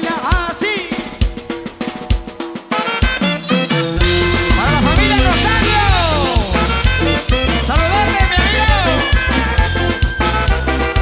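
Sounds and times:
live band playing: 0:00.0 - 0:11.0
long held high note: 0:04.0 - 0:07.4.

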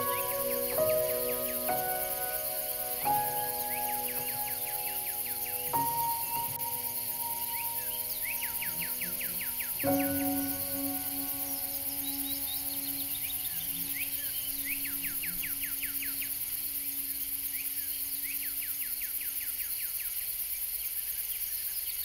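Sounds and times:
long low music note: 0:00.0 - 0:17.1
high insect-like hiss: 0:00.0 - 0:22.0.

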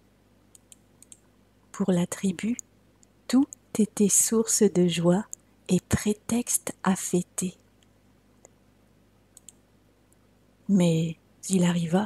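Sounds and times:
faint clicks: 0:00.5 - 0:01.3, 0:09.3 - 0:10.2.

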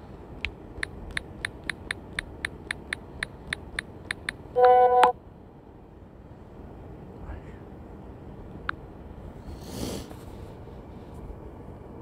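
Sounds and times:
quick clicks: 0:00.4 - 0:04.4
buzzy horn-like tone: 0:04.6 - 0:05.1.

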